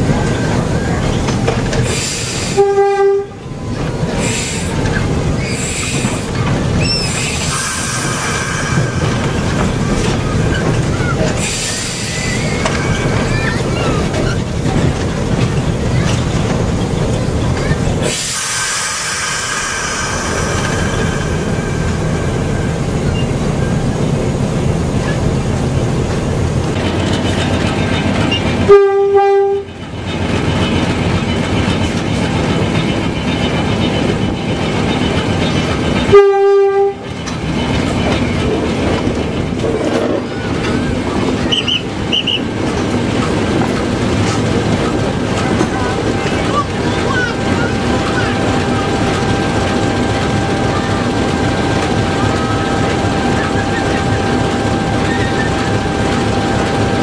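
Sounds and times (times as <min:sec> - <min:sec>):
locomotive engine running: 0:00.0 - 0:57.0
locomotive horn blasts: 0:02.5 - 0:03.4, 0:28.6 - 0:29.7, 0:36.1 - 0:37.0.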